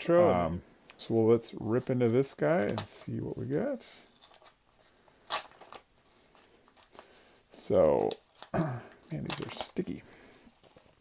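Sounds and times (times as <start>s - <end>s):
paper rustling: 9.1s - 11.0s.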